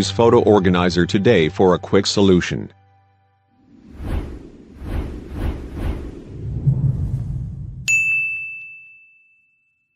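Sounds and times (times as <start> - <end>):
low rumbling swell: 3.6 - 7.9
bright bell-like ding: 7.9 - 9.9.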